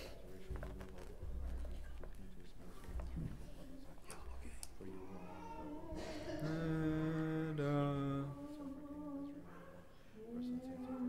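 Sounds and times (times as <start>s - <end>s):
unaccompanied liturgical chant: 2.7s - 11.0s.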